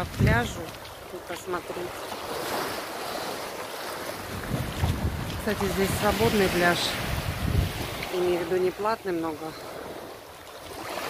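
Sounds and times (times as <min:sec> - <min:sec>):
waves washing up a beach: 0:00.0 - 0:11.0.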